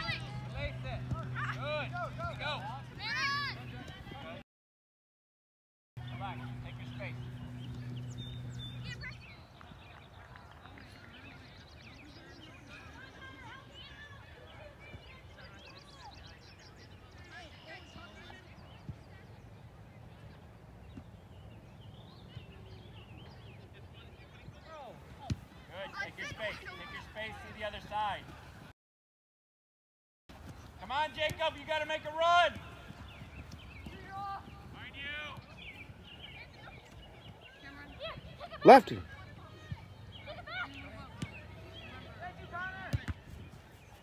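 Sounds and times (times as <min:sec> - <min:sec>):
soccer ball kicked thud: 0:25.2 - 0:25.5, 0:42.9 - 0:43.4
players shouting: 0:38.5 - 0:39.1.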